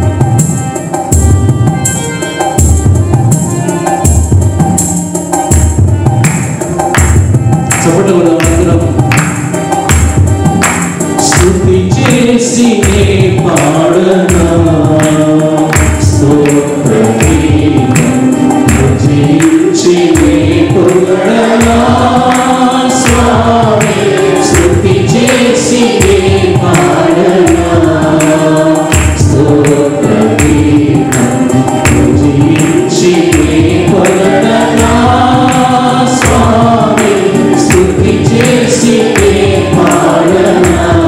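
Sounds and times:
instrumental accompaniment: 0.0 - 41.0
steady percussion beat: 0.0 - 41.0
choir singing worship song: 6.6 - 41.0.

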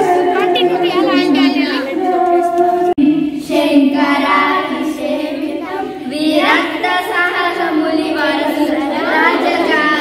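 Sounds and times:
high singing voice: 0.0 - 10.0.

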